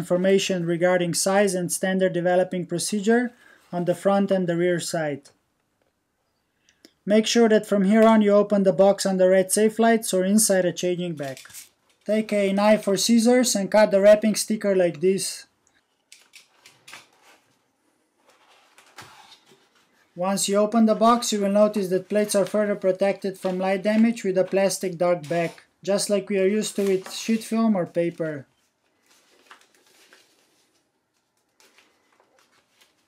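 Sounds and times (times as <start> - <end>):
plastic bag rustling and crinkling: 26.6 - 33.0.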